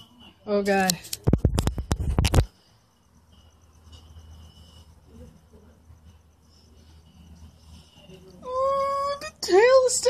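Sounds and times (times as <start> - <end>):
faint steady high tone: 2.5 - 10.0.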